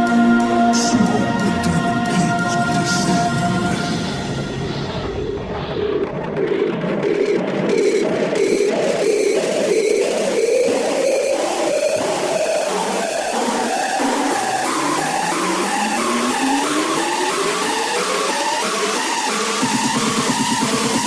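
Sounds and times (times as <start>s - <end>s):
electronic dance music: 0.0s - 21.0s
rising synth sweep: 0.0s - 21.0s.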